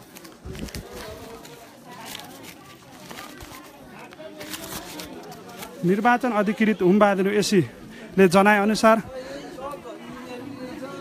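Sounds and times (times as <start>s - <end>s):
rustling and handling noise: 0.0s - 6.2s
crowd chatter: 0.0s - 11.0s.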